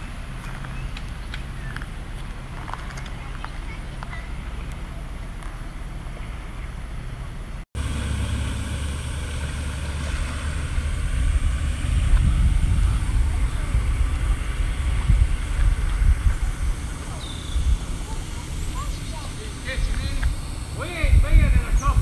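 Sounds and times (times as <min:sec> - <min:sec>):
wind buffeting microphone: 0:08.8 - 0:22.0.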